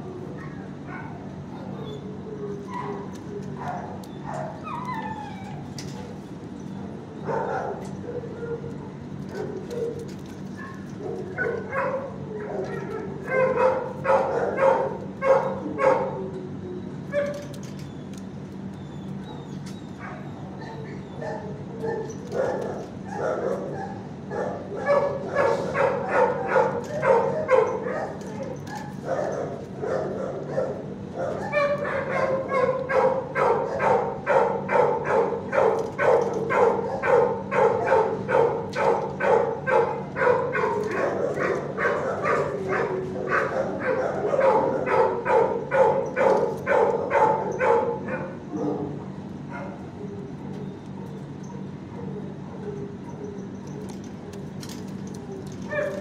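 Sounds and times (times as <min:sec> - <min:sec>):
dogs barking: 0:00.0 - 0:17.8, 0:19.0 - 0:56.0.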